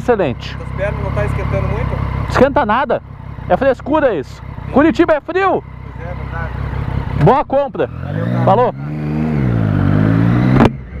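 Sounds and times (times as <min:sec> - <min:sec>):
motorcycle engine pulling away: 0:00.1 - 0:11.0.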